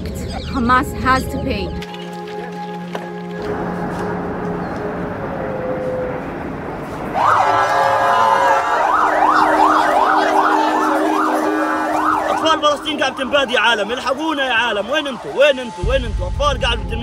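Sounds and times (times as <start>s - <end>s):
street noise: 0.0s - 17.0s
emergency vehicle siren: 3.4s - 16.1s.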